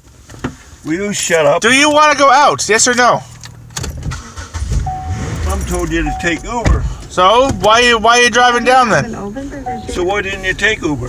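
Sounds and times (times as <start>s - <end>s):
car rumble inside cabin: 3.6s - 11.0s.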